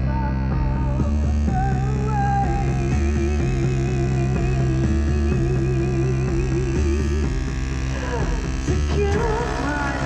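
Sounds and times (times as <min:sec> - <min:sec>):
buzzing low drone: 0:00.0 - 0:10.0.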